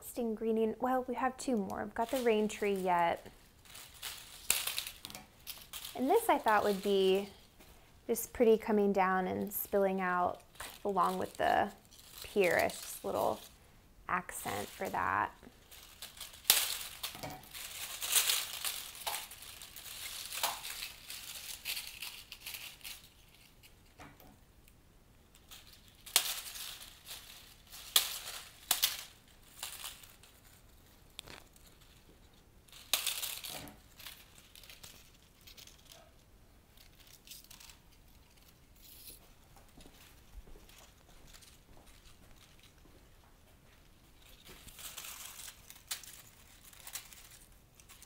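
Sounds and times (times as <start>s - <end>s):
dry seed capsules rustling: 0.1s - 48.0s.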